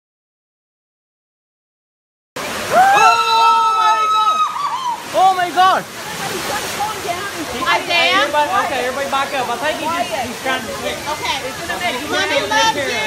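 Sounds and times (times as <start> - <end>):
rushing water: 2.4 - 13.0
people shouting and screaming: 2.6 - 5.8
long high cry: 2.7 - 5.1.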